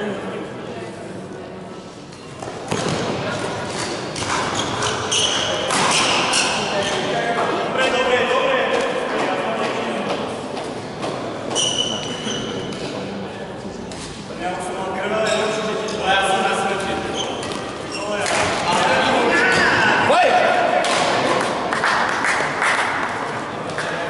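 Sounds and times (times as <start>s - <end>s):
echoing voices and chatter: 0.0s - 24.0s.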